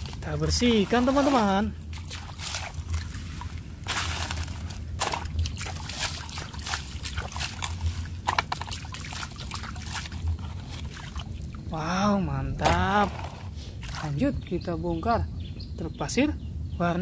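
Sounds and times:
water sloshing and splashing: 0.0s - 14.6s.

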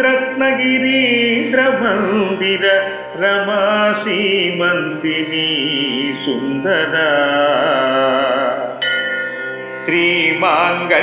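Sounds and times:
person singing devotional song: 0.0s - 11.0s
bright ringing instrumental note: 8.8s - 10.2s.

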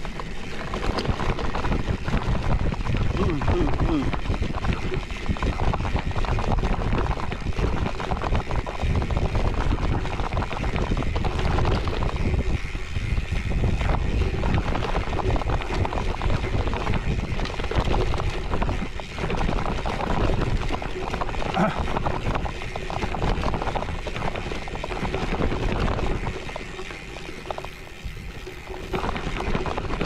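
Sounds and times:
bike knocks and rattles: 0.0s - 30.0s
bike tyres rolling on dirt: 0.0s - 30.0s
wind buffeting microphone: 0.0s - 30.0s.

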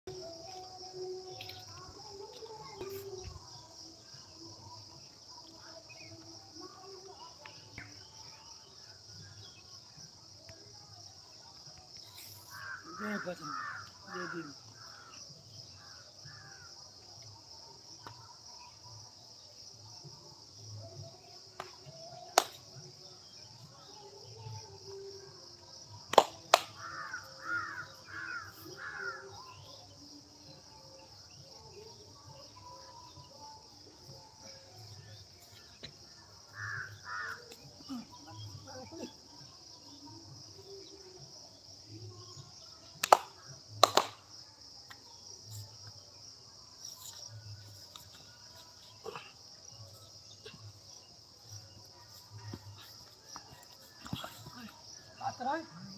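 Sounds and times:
high insect drone: 11.8s - 21.9s, 26.7s - 42.8s
crows cawing: 12.6s - 15.0s, 26.8s - 29.2s, 36.6s - 37.4s.

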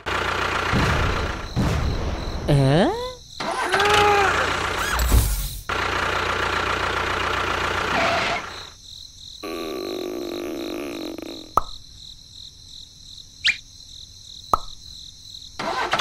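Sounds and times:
tractor engine running: 0.0s - 1.8s, 3.4s - 8.8s.

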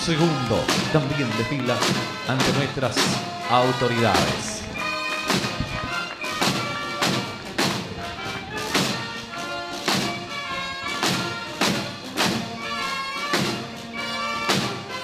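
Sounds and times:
wind instruments sustained notes: 0.0s - 15.0s.

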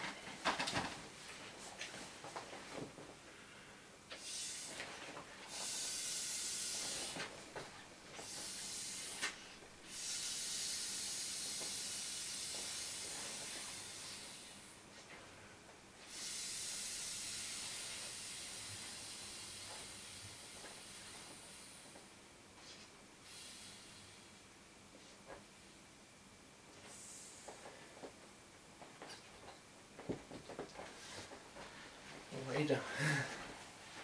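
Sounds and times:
man blowing into inflatable toy: 8.2s - 14.6s, 16.0s - 21.7s
person inhaling: 32.8s - 33.6s.

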